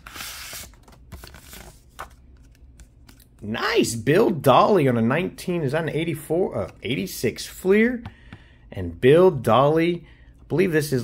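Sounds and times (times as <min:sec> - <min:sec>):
paper envelope rustling: 0:00.0 - 0:03.4.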